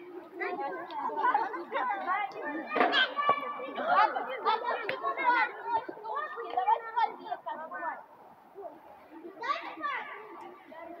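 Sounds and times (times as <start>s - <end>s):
children chattering and calling: 0.0s - 11.0s.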